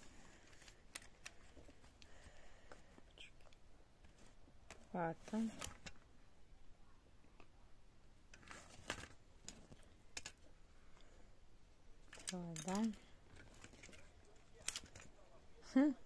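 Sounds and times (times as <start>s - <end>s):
plastic telephone parts clicking: 0.5s - 1.8s, 8.3s - 10.5s, 12.0s - 15.2s.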